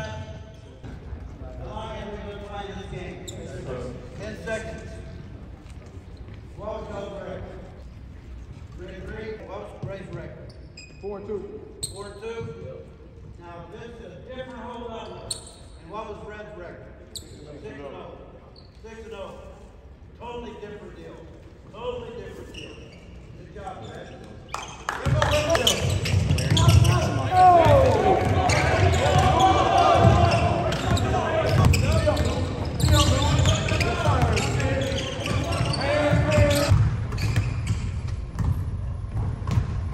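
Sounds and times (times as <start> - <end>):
players calling out: 24.2 - 36.8
basketball bouncing on hardwood: 36.1 - 39.8.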